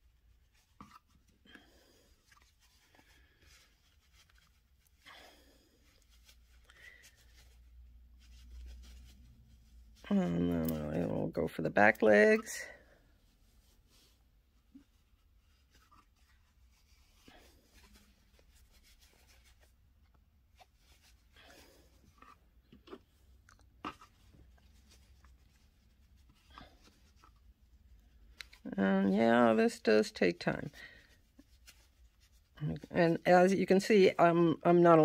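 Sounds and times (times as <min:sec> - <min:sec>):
fiberfill rustling and scratching: 0:00.0 - 0:35.0.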